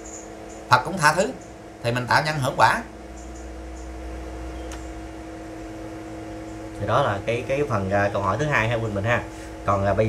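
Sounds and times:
low rumbling hum: 0:00.0 - 0:10.0.

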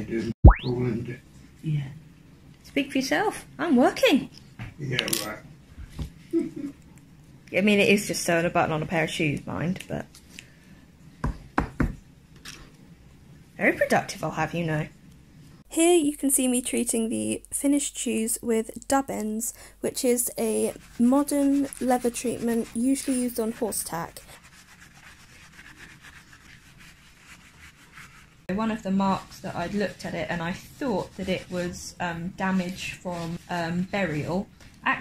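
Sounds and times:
cloth rubbing on leather: 0:20.1 - 0:28.5, 0:29.5 - 0:31.9, 0:32.5 - 0:34.3.

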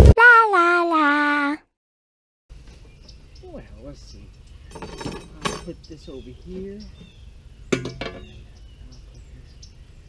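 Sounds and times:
metal grill grate clinking: 0:04.7 - 0:05.8, 0:07.7 - 0:08.4.

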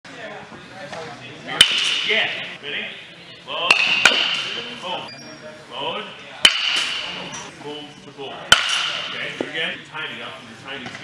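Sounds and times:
baseball bat hitting ball: 0:01.6 - 0:02.2, 0:03.7 - 0:04.7, 0:06.4 - 0:07.2, 0:08.5 - 0:09.2.

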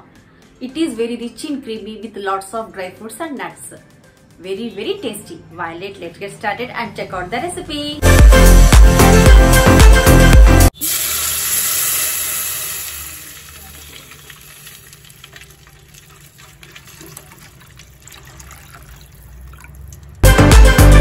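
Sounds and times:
background music: 0:00.0 - 0:10.7, 0:20.2 - 0:21.0
milk pouring into steel pot: 0:10.8 - 0:20.2.

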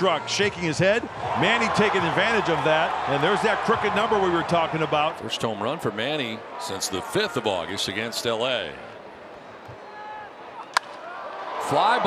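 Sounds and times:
wooden bat hitting ball: 0:10.7 - 0:11.0.

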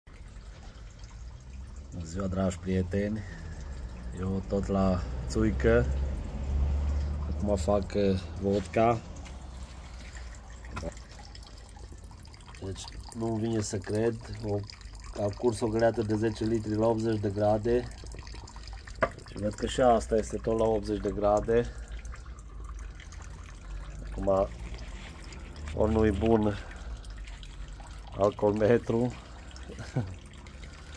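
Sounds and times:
liquid stream splashing into basin: 0:00.1 - 0:30.9.

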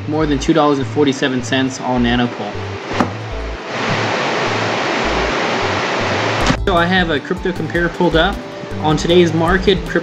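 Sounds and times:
steady rushing hiss: 0:02.8 - 0:07.2.

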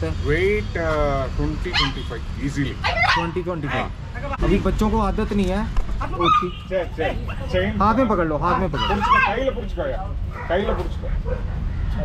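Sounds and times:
dog whining: 0:02.8 - 0:03.9, 0:06.1 - 0:06.6, 0:08.5 - 0:09.5.

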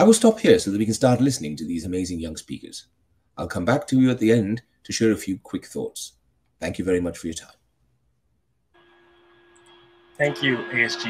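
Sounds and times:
speech: 0:00.0 - 0:07.6, 0:10.2 - 0:11.0
thin constant tone: 0:08.7 - 0:11.0.

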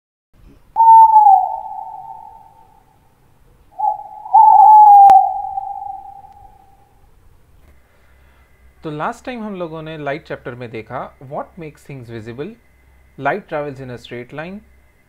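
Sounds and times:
owl hooting: 0:00.7 - 0:03.0, 0:03.7 - 0:07.0.

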